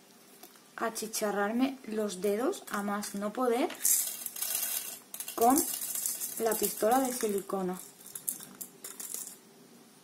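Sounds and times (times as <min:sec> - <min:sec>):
small stones rattling and scraping: 0:02.7 - 0:09.4.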